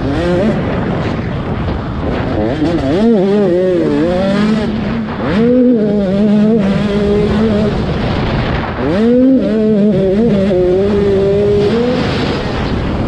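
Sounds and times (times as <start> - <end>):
motocross bike engine revving: 0.0 - 13.0
wind on microphone: 0.0 - 13.0.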